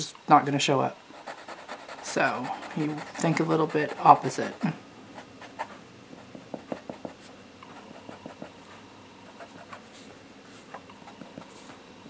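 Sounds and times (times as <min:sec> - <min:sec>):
marker scratching on paper: 0:01.2 - 0:04.7.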